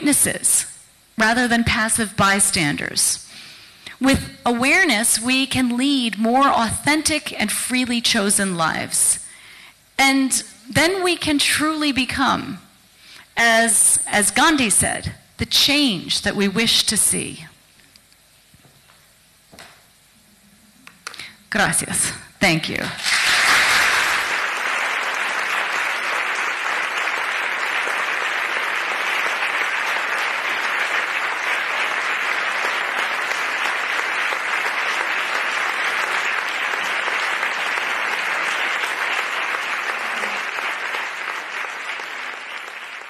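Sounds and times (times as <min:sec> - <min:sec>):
audience applauding: 0:23.0 - 0:43.0.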